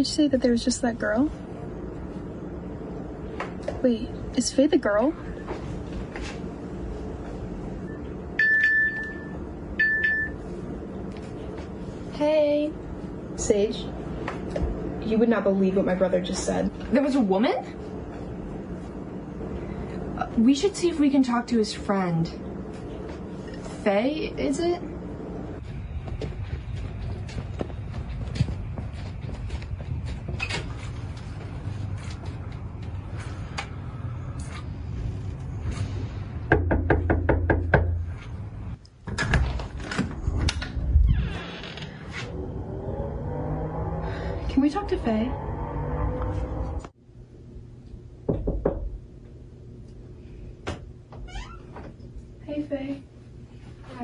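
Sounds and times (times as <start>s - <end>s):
phone ringing chime tones: 8.4s - 10.4s
knuckles knocking on door: 36.5s - 38.0s, 48.3s - 48.9s.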